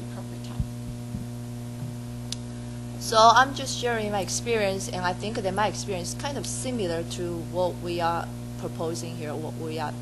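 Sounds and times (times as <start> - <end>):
soft low thumps: 0.0 - 2.6
electrical mains hum: 0.0 - 10.0.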